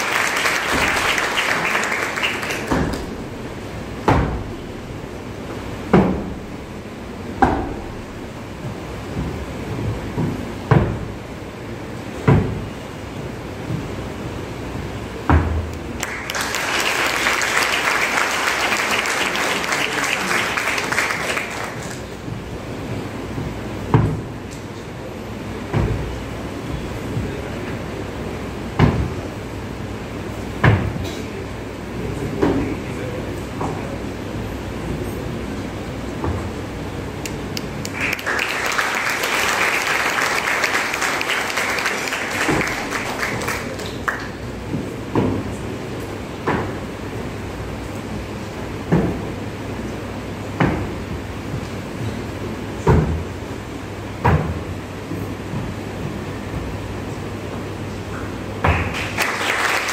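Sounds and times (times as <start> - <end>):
shoes stamping on a stage: 0.0 - 3.2, 7.4 - 11.2, 37.8 - 45.6
room noise: 0.0 - 59.9
steady low hum: 0.0 - 59.9
foot stamps on a stage: 0.5 - 3.3, 4.1 - 4.7, 7.4 - 11.2, 12.2 - 14.1, 17.4 - 24.8.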